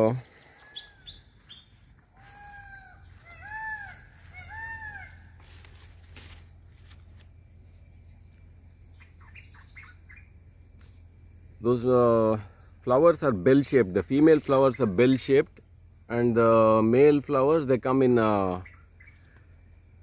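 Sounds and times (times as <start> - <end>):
birds calling: 0.0 - 20.0.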